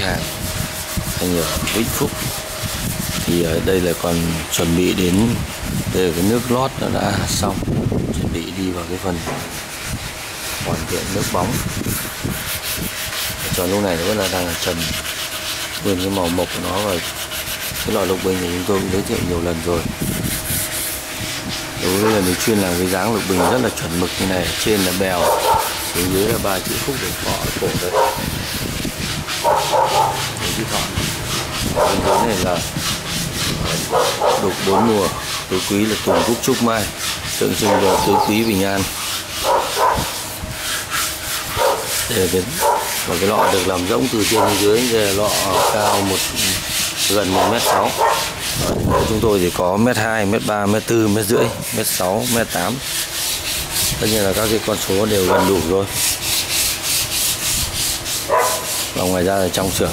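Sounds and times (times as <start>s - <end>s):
sandpaper rubbing on wood: 0.0s - 59.9s.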